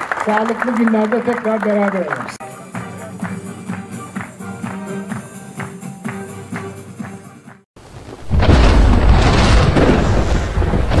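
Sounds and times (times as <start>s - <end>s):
thunder rumble: 7.8s - 11.0s.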